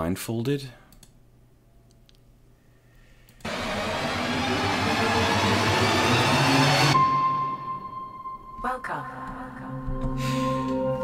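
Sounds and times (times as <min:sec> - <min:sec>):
electronic rushing noise: 0:03.5 - 0:07.7.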